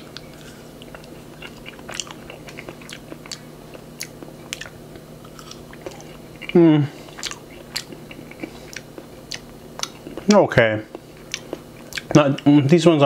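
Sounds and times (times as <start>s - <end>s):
chewing and mouth clicks: 0.1s - 10.3s, 10.9s - 12.5s.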